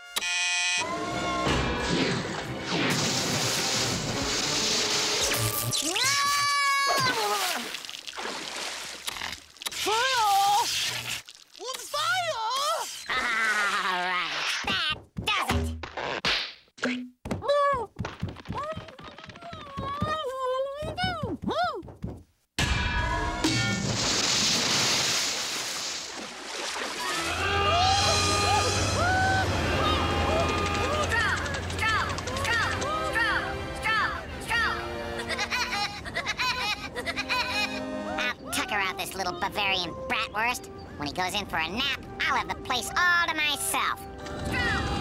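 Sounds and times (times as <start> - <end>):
cartoon music score: 0.0 - 2.9, 36.7 - 45.0
rushing splashy noise: 2.8 - 5.6, 23.8 - 27.2.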